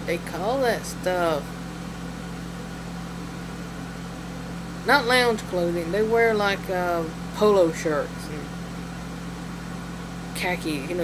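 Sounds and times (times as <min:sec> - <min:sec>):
person speaking: 0:00.0 - 0:01.6, 0:04.8 - 0:08.6, 0:10.4 - 0:11.0
low background hum: 0:00.0 - 0:11.0.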